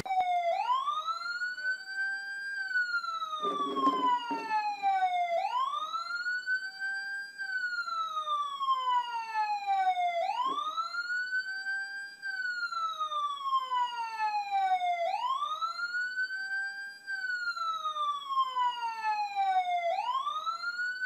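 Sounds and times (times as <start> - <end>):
emergency vehicle siren wailing: 0.0 - 21.0.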